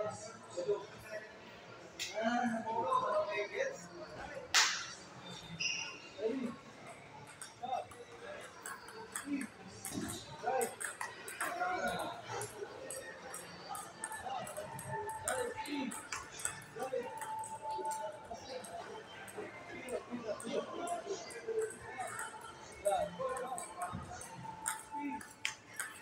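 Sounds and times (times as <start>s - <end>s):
table tennis ball clicking: 7.3s - 18.0s, 21.6s - 26.0s.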